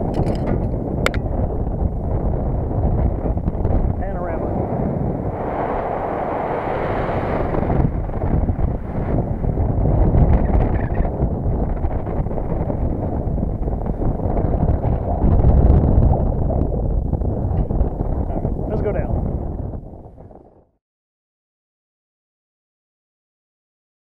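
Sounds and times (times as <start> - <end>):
wind buffeting microphone: 0.0 - 20.8.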